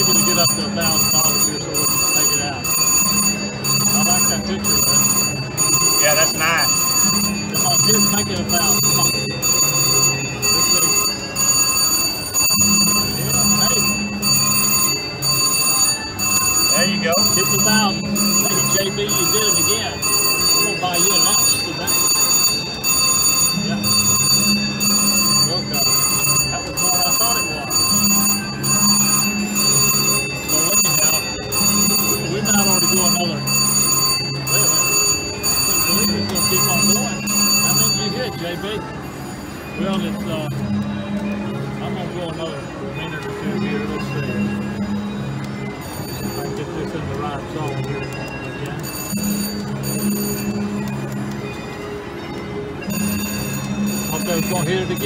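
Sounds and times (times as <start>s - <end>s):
slot machine bell ringing: 0.0s - 55.0s.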